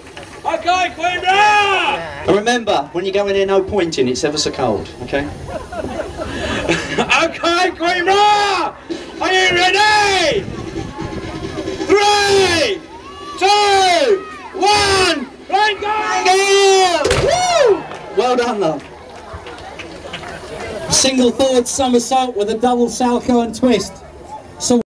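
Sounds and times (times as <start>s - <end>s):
crowd noise: 0.0s - 24.8s.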